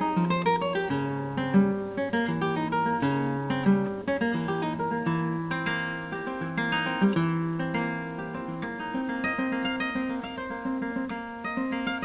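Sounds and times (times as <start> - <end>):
classical guitar solo: 0.0 - 12.0.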